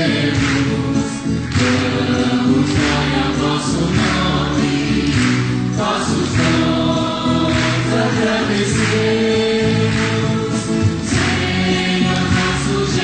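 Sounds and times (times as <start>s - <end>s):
choir singing a hymn: 0.0s - 13.0s.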